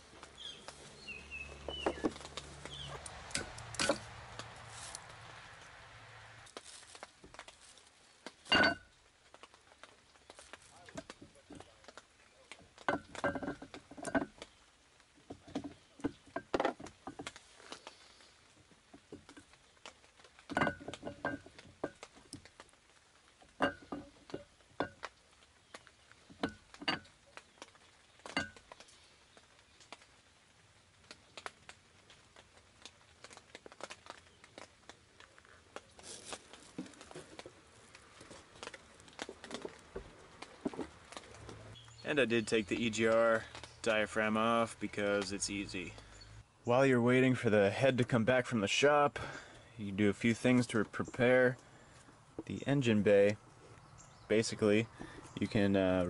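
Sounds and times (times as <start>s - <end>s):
metallic clinks and knocks: 3.3s - 4.1s, 8.5s - 8.9s, 12.8s - 14.4s, 20.5s - 22.1s, 23.5s - 25.1s, 28.2s - 28.8s.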